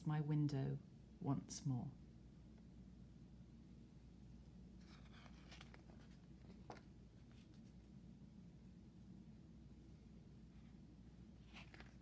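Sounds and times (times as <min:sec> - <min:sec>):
low room hum: 0:00.0 - 0:12.0
paper page rustling: 0:04.8 - 0:07.9, 0:11.4 - 0:12.0.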